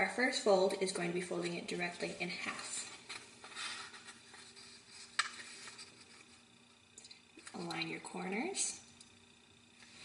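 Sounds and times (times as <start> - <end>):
paper rustling and sliding: 2.4 - 6.4.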